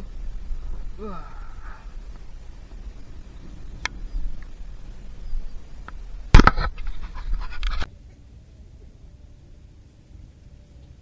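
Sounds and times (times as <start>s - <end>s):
scraping and rustling: 2.1s - 7.9s.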